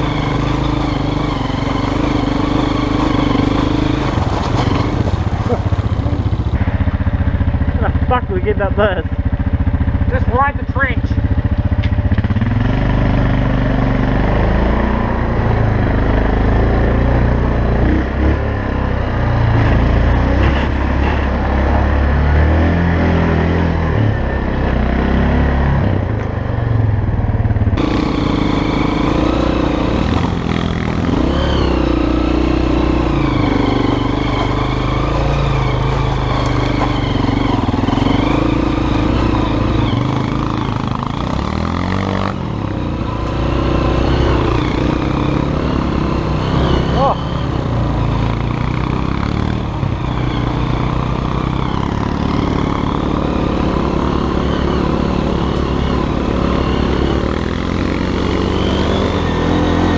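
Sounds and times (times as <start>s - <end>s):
atv engine revving: 0.0s - 59.9s
dirt bike engine revving: 0.0s - 59.9s.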